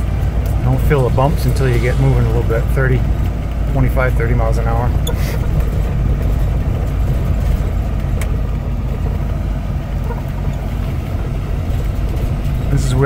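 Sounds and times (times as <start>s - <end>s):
engine and road rumble: 0.0s - 13.0s.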